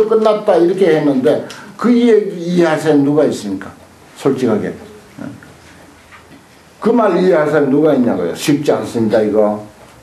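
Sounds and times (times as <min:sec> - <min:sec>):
man speaking: 0:00.0 - 0:05.6, 0:06.8 - 0:09.8.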